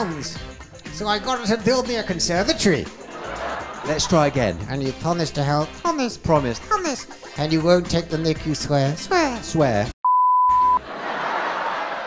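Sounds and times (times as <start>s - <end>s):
high-pitched censor bleep: 10.0s - 10.8s.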